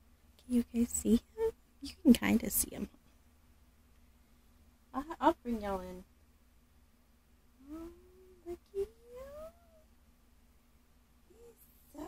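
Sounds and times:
woman cooing: 0:07.6 - 0:09.8, 0:11.3 - 0:12.0.

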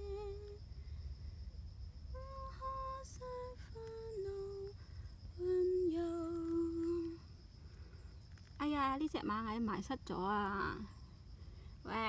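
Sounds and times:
woman humming a hymn: 0:00.0 - 0:00.6.

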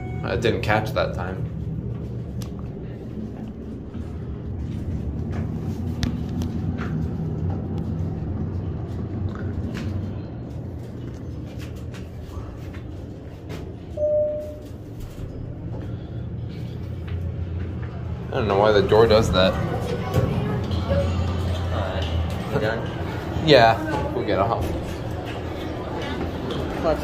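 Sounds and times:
short single tone: 0:00.0 - 0:00.4, 0:14.0 - 0:14.8.

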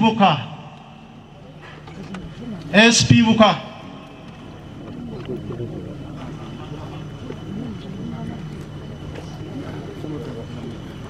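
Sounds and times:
indistinct voices: 0:00.0 - 0:11.0
steady low hum: 0:00.0 - 0:11.0.

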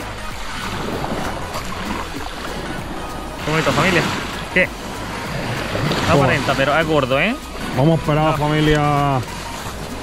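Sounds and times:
surf washing on shore: 0:00.0 - 0:10.0.

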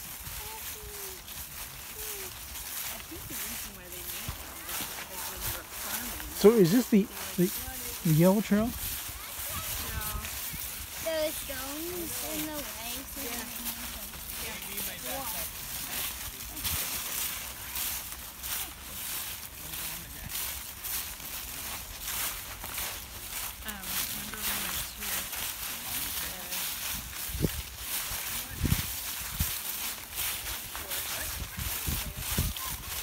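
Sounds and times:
faint voices: 0:00.0 - 0:33.0
footsteps in dry leaves: 0:00.0 - 0:33.0.

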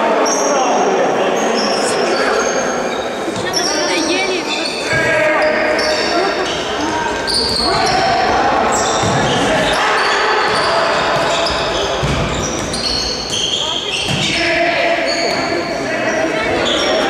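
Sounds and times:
players calling out: 0:00.2 - 0:17.0
shoes squeaking on court: 0:01.4 - 0:08.1, 0:10.4 - 0:17.0.

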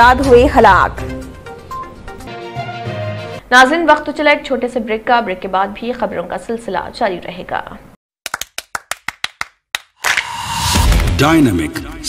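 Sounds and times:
sharp clap-like hits: 0:08.2 - 0:11.3.

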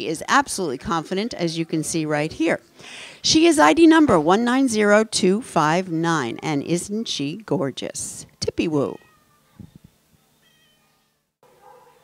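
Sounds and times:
faint cat meow: 0:10.4 - 0:11.2.

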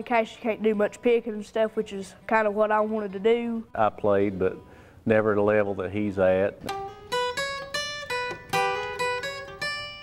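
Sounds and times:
acoustic guitar single notes: 0:06.5 - 0:10.0.

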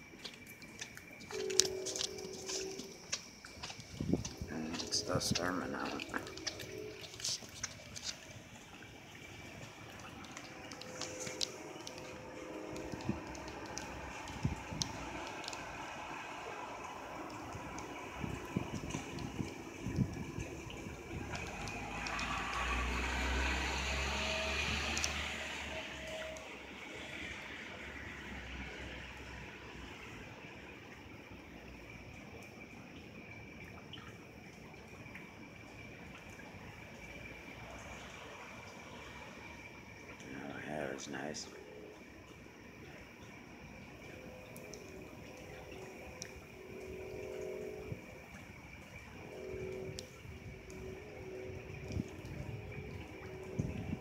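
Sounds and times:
drips and splashes: 0:00.0 - 0:54.0
rain falling: 0:00.0 - 0:54.0
low rumble of thunder: 0:17.4 - 0:23.8, 0:47.7 - 0:54.0.

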